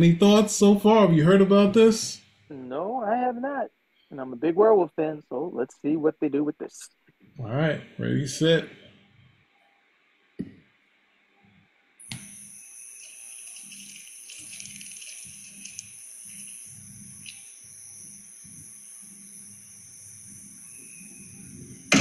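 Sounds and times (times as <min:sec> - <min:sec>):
high-pitched insect drone: 0:12.0 - 0:22.0.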